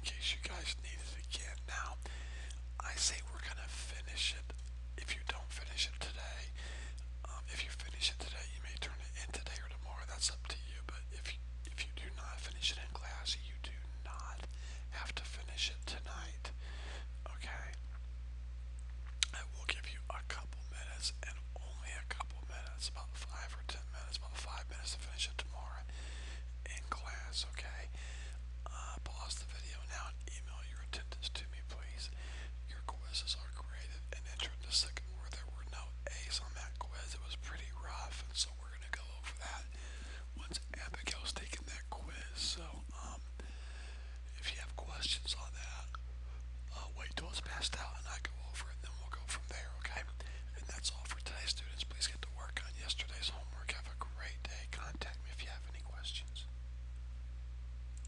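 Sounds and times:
whispering and murmured voices: 0.0s - 2.0s, 2.8s - 6.6s, 7.2s - 16.6s, 17.2s - 17.8s, 19.2s - 25.9s, 26.6s - 28.0s, 28.6s - 39.7s, 40.3s - 43.3s, 44.3s - 46.0s, 46.7s - 56.5s
steady low hum: 0.0s - 58.0s.

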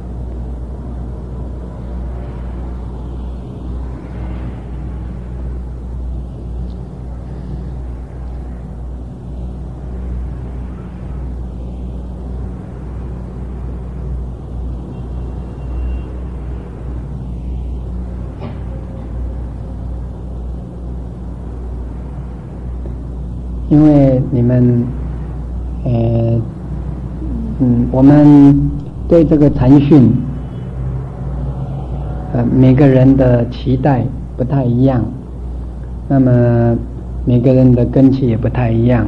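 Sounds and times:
steady low hum with rumble: 0.0s - 39.0s.

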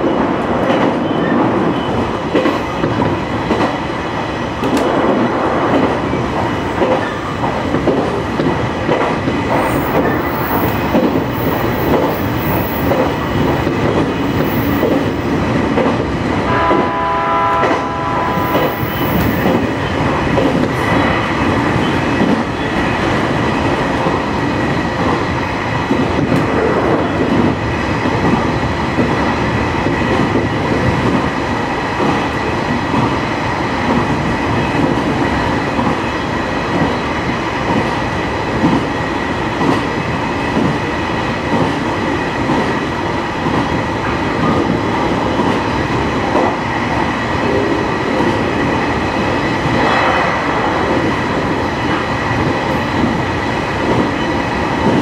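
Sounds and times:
electric train rumbling on rails: 0.0s - 55.0s
train horn: 16.5s - 18.7s.

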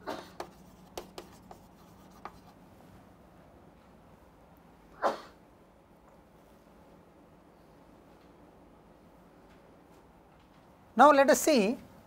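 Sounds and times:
chalk tapping and scratching: 0.1s - 2.6s.

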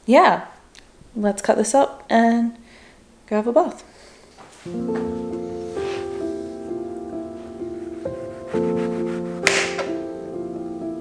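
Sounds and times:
soft background music: 4.6s - 11.0s
knife slicing lemon on cutting board: 8.1s - 10.0s.

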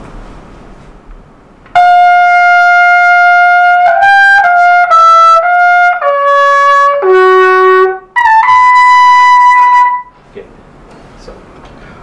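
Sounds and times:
trumpet playing: 1.8s - 10.2s.

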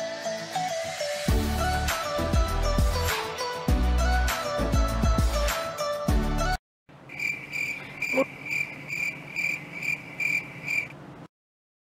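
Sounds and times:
outro music: 0.0s - 6.6s
cricket-like insect chirping: 7.1s - 10.9s.

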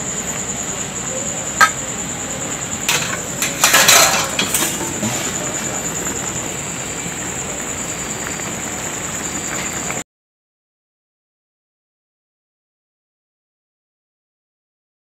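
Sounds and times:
high-pitched whine: 0.0s - 10.0s
metal spatula scraping a wok: 2.9s - 5.6s.

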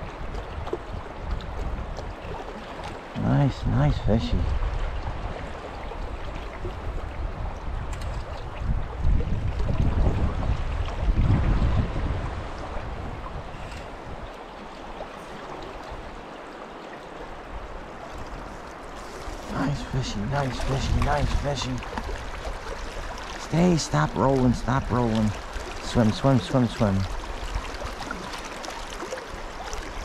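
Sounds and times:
wind buffeting microphone: 0.0s - 2.6s, 3.4s - 16.4s, 17.4s - 28.1s
creek water rushing: 0.0s - 30.0s.

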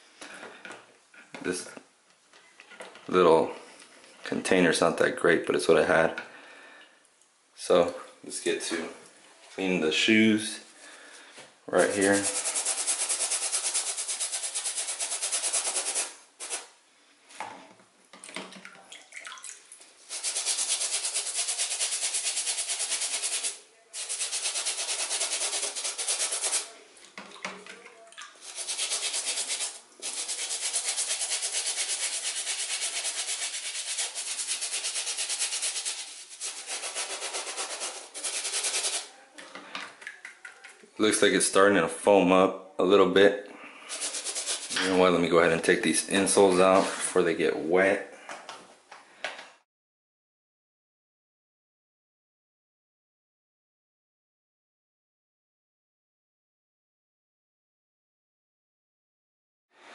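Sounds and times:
brush scrubbing wet sneaker: 11.8s - 16.7s, 20.1s - 26.7s, 28.4s - 39.1s, 43.9s - 44.8s.

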